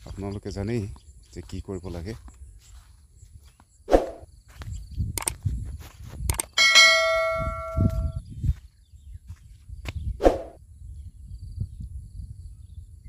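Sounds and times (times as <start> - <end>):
sharp clicks: 5.1 - 5.4, 6.2 - 6.6
bright bell ding: 6.6 - 8.2.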